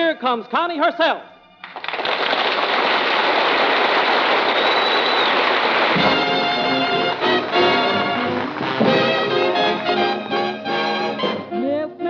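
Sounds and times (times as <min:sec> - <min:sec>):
audience applauding: 0:01.6 - 0:11.2.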